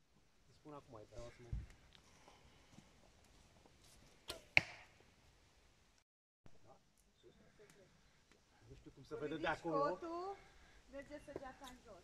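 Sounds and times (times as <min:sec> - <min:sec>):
wooden bow snapping: 0:04.3 - 0:04.9.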